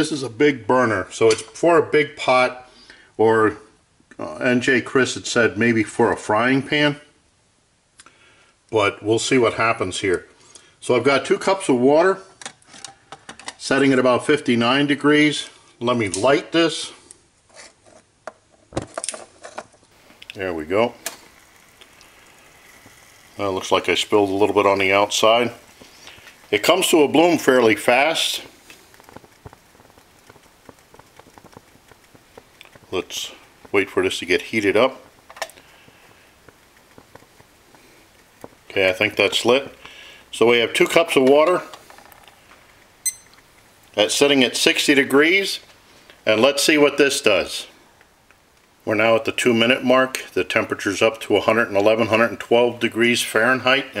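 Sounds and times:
soft hiss: 0.0s - 54.0s
light rain drops ticking: 19.8s - 54.0s
high electronic timer beep: 43.0s - 43.4s.

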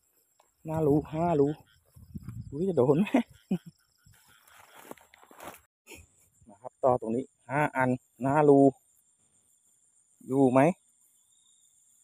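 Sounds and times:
crickets trilling: 0.0s - 12.0s
man speaking: 0.7s - 1.6s, 2.4s - 3.2s, 6.6s - 8.8s, 10.3s - 10.8s.

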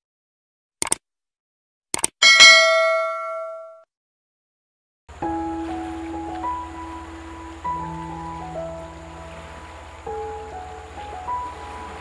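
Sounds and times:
quick clicks: 0.8s - 1.0s, 1.9s - 2.2s
bright bell ding: 2.2s - 3.8s.

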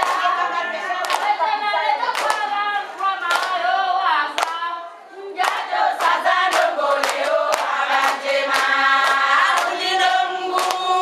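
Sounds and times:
hand claps: 0.0s - 1.4s, 2.0s - 2.6s, 3.2s - 3.6s, 4.3s - 4.6s, 5.4s - 9.8s, 10.5s - 11.0s
women singing together: 0.0s - 11.0s.

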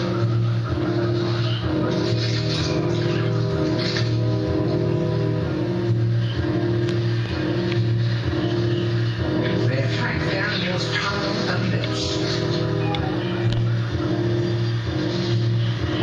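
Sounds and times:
documentary background music: 0.0s - 16.0s
narrator speaking: 9.6s - 12.4s.

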